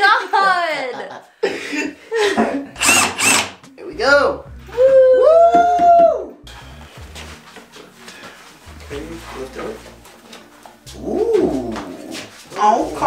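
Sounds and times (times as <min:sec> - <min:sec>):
knocks and shuffling of furniture: 0:05.4 - 0:13.0.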